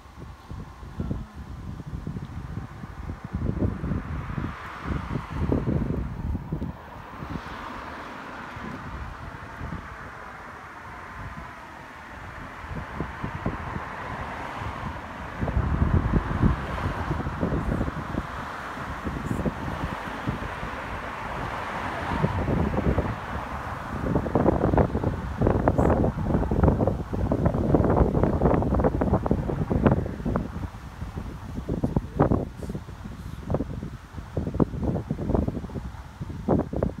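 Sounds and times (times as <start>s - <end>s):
cars passing on road: 0.0s - 37.0s
wind buffeting microphone: 0.0s - 37.0s.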